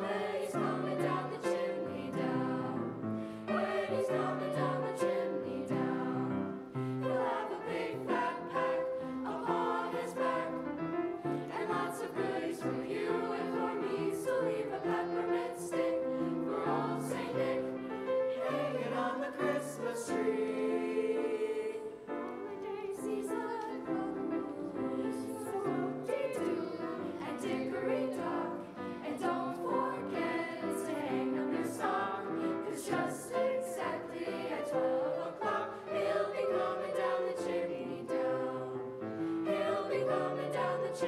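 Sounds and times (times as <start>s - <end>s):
choir singing: 0.0s - 41.0s.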